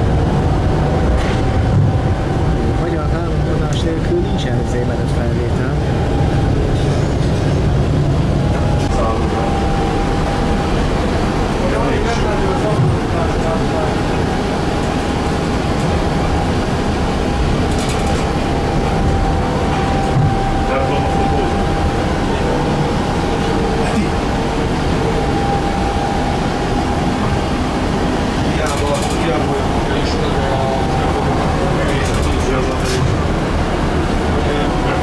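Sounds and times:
tram wheels rumbling on rails: 0:00.0 - 0:35.0.

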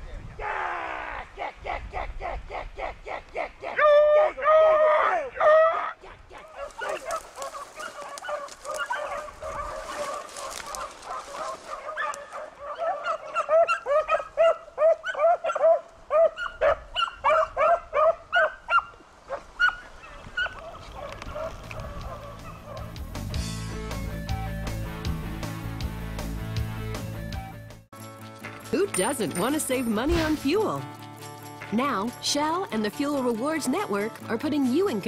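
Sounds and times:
beagles baying and barking: 0:01.2 - 0:23.3.

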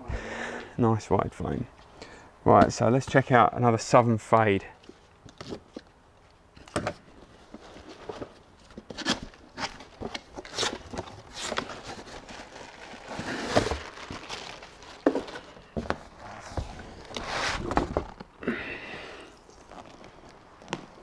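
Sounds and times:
cardboard scraping and rustling: 0:06.7 - 0:18.3
plastic bag rustling: 0:07.2 - 0:18.4.

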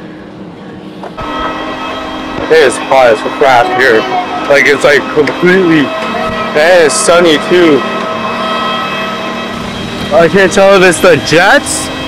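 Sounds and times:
machinery rumble: 0:00.0 - 0:12.0
high whining tones: 0:01.1 - 0:12.0.

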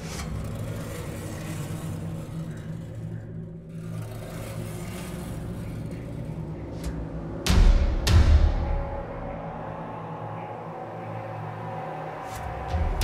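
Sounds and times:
low droning tones: 0:00.0 - 0:13.0.

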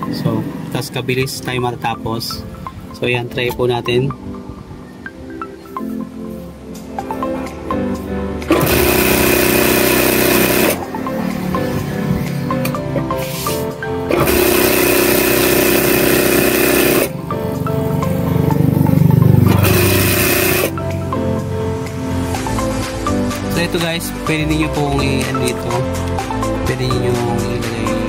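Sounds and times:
background music: 0:00.0 - 0:28.0
industrial sewing machine running: 0:08.5 - 0:10.8, 0:14.1 - 0:17.1, 0:19.4 - 0:20.7.

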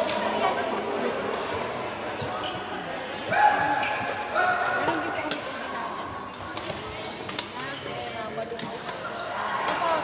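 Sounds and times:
rackets hitting shuttlecock: 0:06.2 - 0:10.0.

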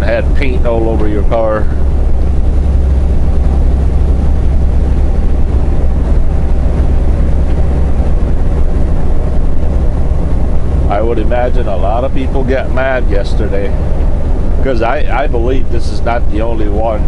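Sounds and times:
truck engine and road drone: 0:00.0 - 0:17.0.

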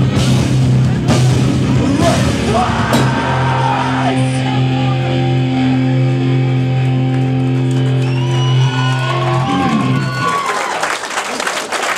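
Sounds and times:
metal band chord on distorted guitars: 0:00.0 - 0:06.8
crowd cheering and clapping: 0:02.7 - 0:04.3, 0:05.0 - 0:11.9.

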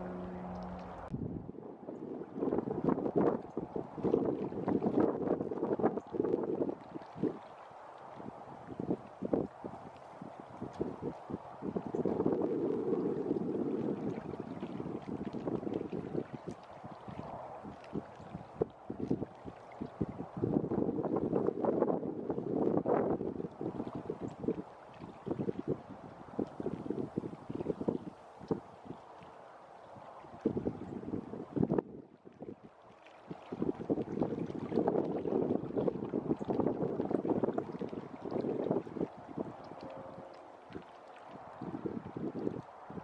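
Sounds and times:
wind buffeting microphone: 0:00.0 - 0:43.0.

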